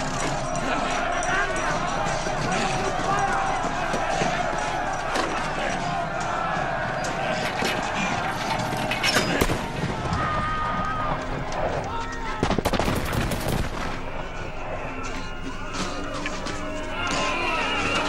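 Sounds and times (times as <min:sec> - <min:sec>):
noisy clamour: 0:00.0 - 0:18.0
raised crowd voices: 0:00.0 - 0:18.0.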